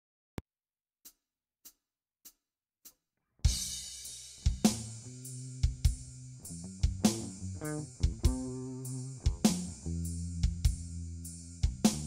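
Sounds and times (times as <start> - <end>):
crash cymbal: 3.5 - 12.0
drums: 3.5 - 12.0
electric guitar riff: 6.5 - 10.0
kick drum hits: 8.0 - 8.5.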